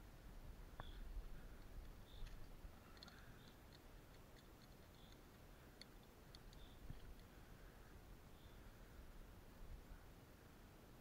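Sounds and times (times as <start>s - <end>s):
metal carabiners clicking: 1.6s - 7.3s.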